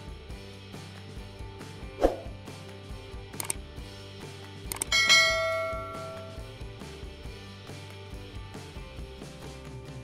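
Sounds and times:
soft background music: 0.0 - 10.0
quick mouse clicks: 3.4 - 3.6, 4.7 - 4.9
bell ding: 4.9 - 6.5.

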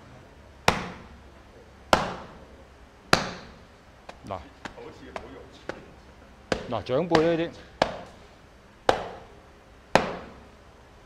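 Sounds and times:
palm slaps on a sandbag: 0.7 - 1.1, 1.9 - 2.4, 3.1 - 5.8, 6.5 - 8.2, 8.9 - 9.3, 10.0 - 10.4.

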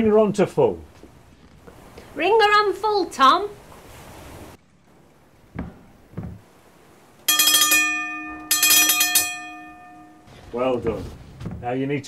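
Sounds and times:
low knocks: 5.5 - 6.5
telegraph bell ringing: 7.3 - 10.4.

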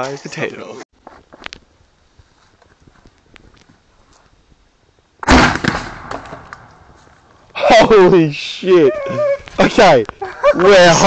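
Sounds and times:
spud gun bang: 5.2 - 6.5.

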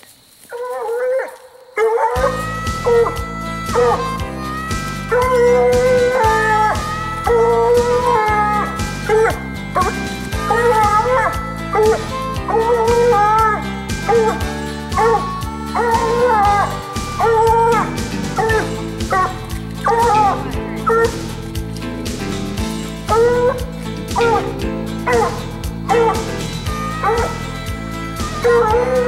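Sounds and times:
hound barking: 0.6 - 4.0, 7.3 - 21.5, 23.0 - 27.6
background music: 1.8 - 29.0.

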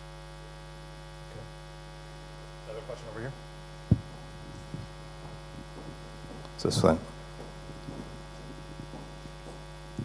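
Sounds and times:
electrical mains hum: 0.0 - 10.0
faint room noise: 0.1 - 10.0.

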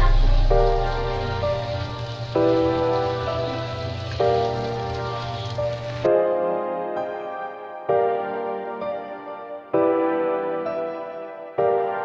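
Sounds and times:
egg sizzling in oil: 0.0 - 6.1
background music chords: 0.0 - 12.0.

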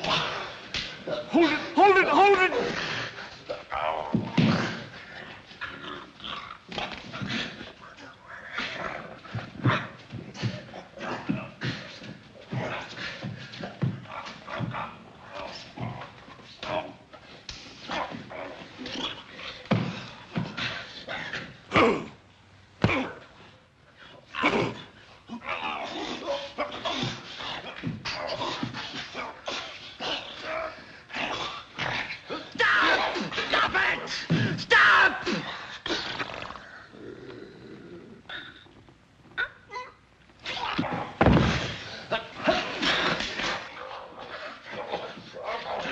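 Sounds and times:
wrestlers grunting: 0.0 - 22.2, 24.1 - 45.9.

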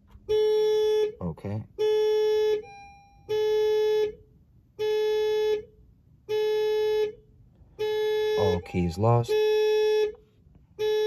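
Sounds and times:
dashboard warning chime: 1.8 - 3.7, 8.1 - 10.1.

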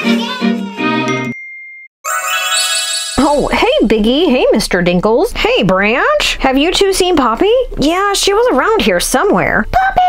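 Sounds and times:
cartoon logo jingle with chimes: 1.1 - 3.7
thin high ringing tone: 2.1 - 3.8.

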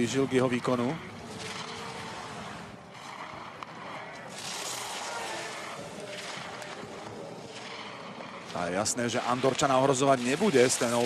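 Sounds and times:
skis scraping on hard snow: 0.0 - 11.0.

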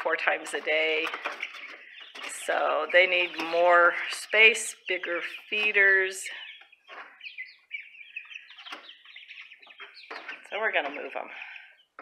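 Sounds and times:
chicks peeping and cheeping: 0.0 - 12.0.

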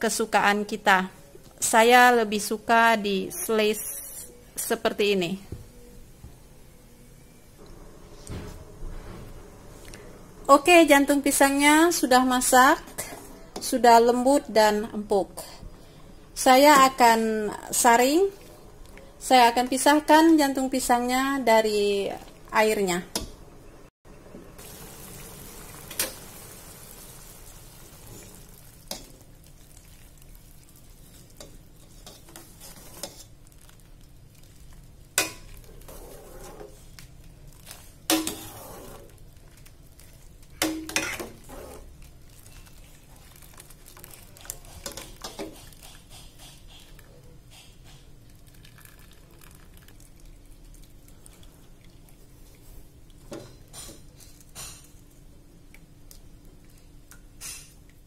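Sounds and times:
metal ladle scraping steel pot: 38.1 - 39.1, 40.9 - 41.9.

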